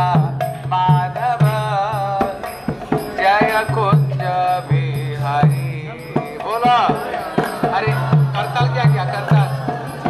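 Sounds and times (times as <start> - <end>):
percussion strikes: 0.0 - 10.0.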